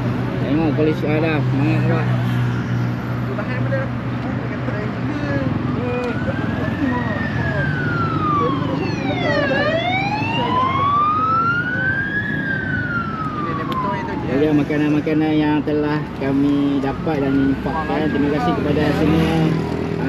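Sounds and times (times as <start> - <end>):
passing road traffic: 0.0 - 20.0
siren wailing: 5.6 - 15.1, 16.8 - 19.6.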